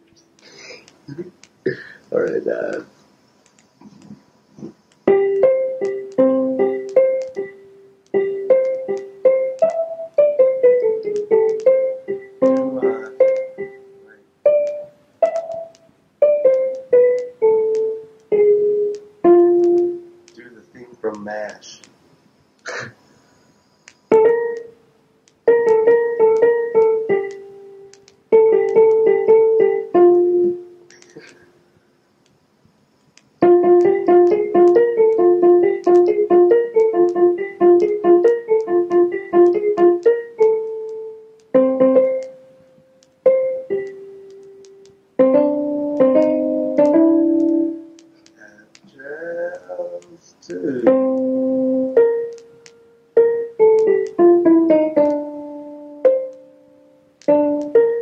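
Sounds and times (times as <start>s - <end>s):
keyboard piano notes and chords: 5.0s - 21.5s, 24.1s - 31.3s, 33.4s - 48.4s, 49.4s - 58.0s.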